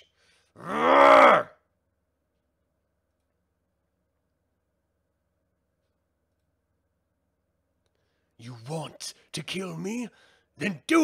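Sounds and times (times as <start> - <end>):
man growling yell: 0.6 - 1.6.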